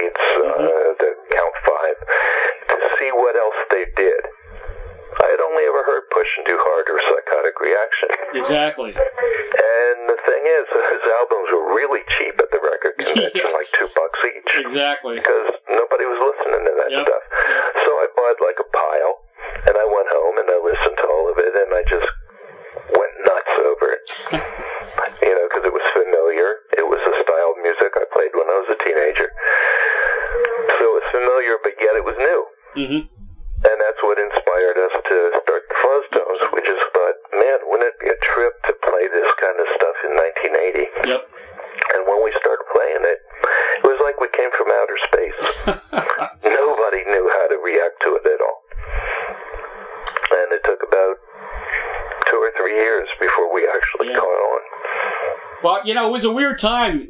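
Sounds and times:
voice over telephone line: 0:00.0 - 0:04.4, 0:05.2 - 0:22.2, 0:22.9 - 0:48.6, 0:50.1 - 0:51.2, 0:52.2 - 0:54.8.

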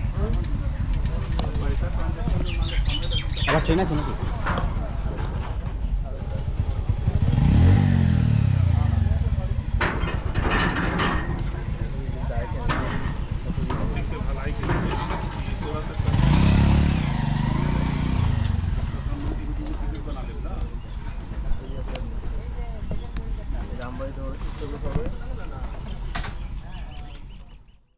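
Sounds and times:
motorcycles passing by: 0:00.0 - 0:21.8
road noise: 0:00.0 - 0:27.7.

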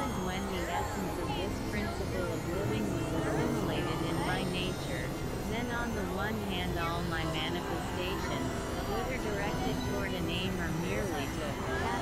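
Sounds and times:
synthesizer drone and noise: 0:00.0 - 0:12.0.

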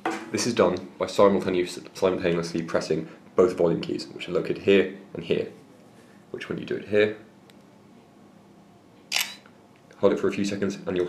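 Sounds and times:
phone shutter click: 0:09.1 - 0:09.4.

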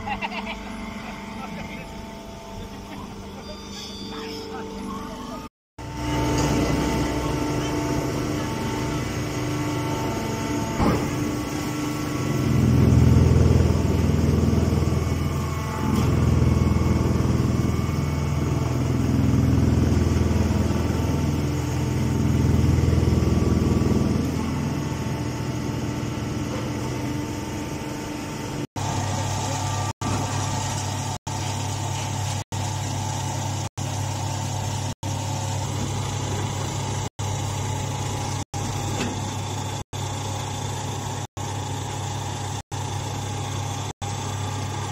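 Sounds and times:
hydraulic baler motor humming: 0:00.0 - 0:44.9.

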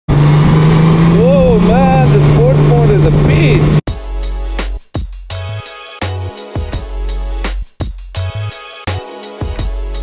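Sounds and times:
motorcycle engine drone: 0:00.1 - 0:03.8
road and wind noise: 0:00.1 - 0:03.8
voice-like sound rising and falling: 0:00.8 - 0:03.8.

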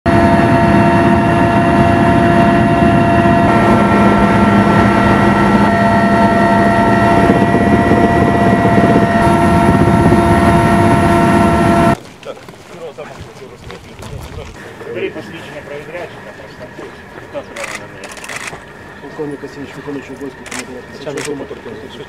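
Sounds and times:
helicopter engine and rotor roar: 0:00.1 - 0:12.0, 0:14.5 - 0:22.0
turbine whining tones: 0:00.1 - 0:12.0, 0:14.5 - 0:22.0.

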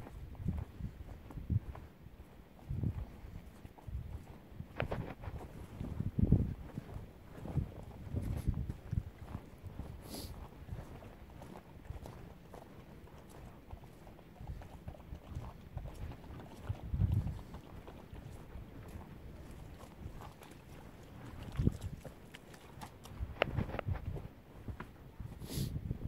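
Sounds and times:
footsteps on muddy track: 0:00.0 - 0:26.0.

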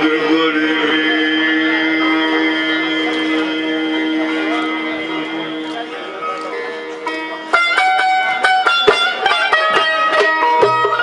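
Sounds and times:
folk song with long-necked lute: 0:00.0 - 0:11.0.

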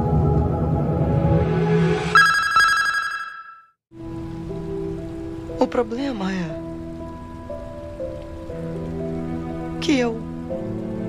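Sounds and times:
sustained film-score tone: 0:00.0 - 0:11.0.

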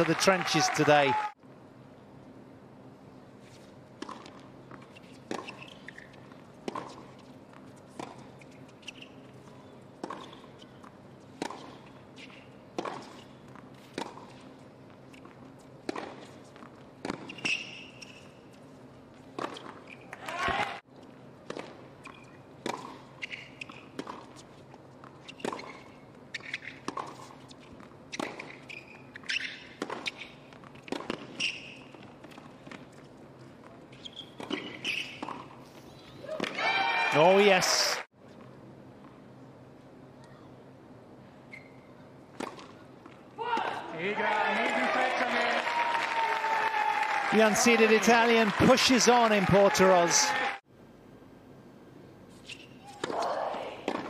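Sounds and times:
tennis ball bouncing: 0:04.0 - 0:18.4, 0:21.4 - 0:33.0, 0:33.7 - 0:36.6
tennis racquet striking ball: 0:29.4 - 0:31.6.

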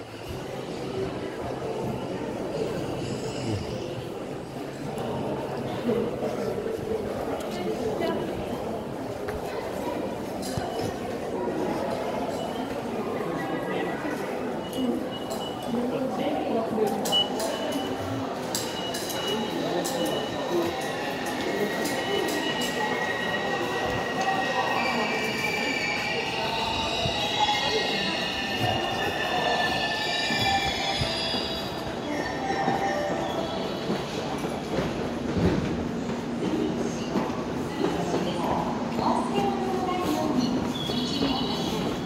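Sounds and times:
train squealing: 0:17.0 - 0:35.0, 0:39.2 - 0:42.0.

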